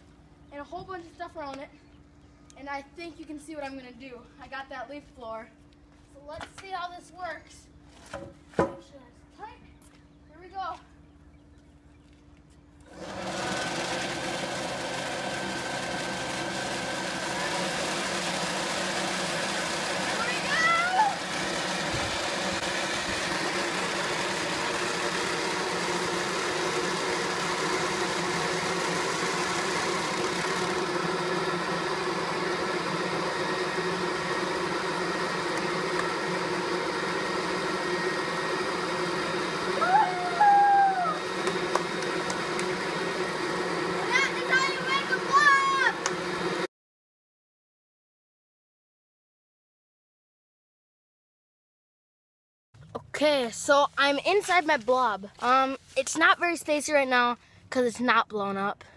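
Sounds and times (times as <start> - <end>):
electric leaf blower running: 12.8 - 46.7.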